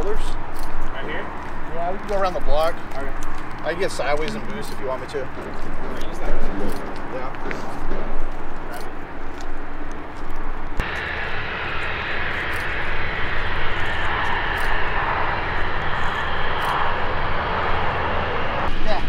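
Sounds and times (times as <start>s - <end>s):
low hum: 0.0s - 19.0s
rushing engine noise: 0.0s - 19.0s.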